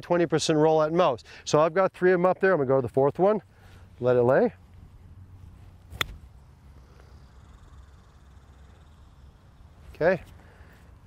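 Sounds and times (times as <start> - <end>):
faint low outdoor rumble: 0.1 - 11.0
golf club striking ball: 5.9 - 6.2.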